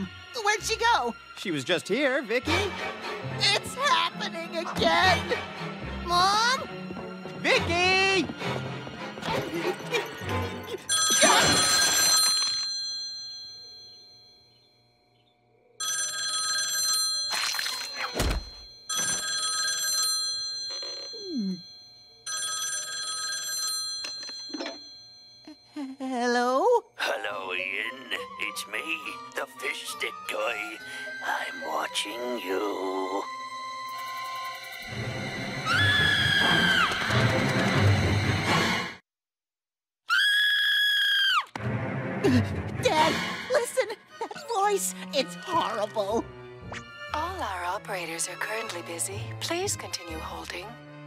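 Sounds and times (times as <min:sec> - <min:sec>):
telephone bell ringing: 0:10.9 - 0:14.6, 0:15.8 - 0:25.6
high-pitched cartoon scream: 0:35.7 - 0:36.9, 0:40.1 - 0:41.6.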